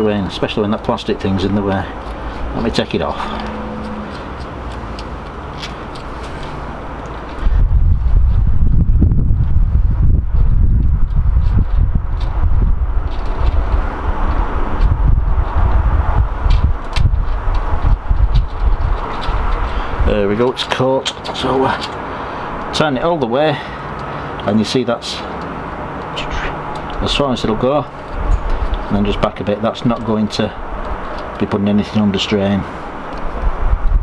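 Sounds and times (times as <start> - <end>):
wind buffeting microphone: 1.4 - 20.8, 25.5 - 34.0.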